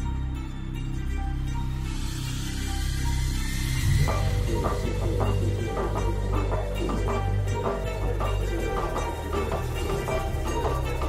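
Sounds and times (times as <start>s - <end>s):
sustained low music notes: 0.0s - 11.0s
hiss-like swell: 1.4s - 6.8s.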